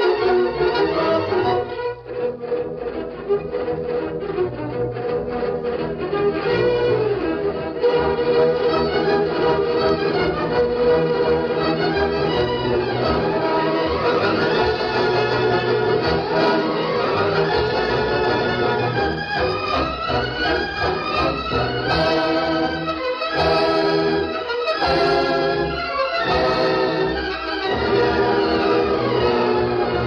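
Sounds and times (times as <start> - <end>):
orchestral music with violins: 0.0 - 30.0.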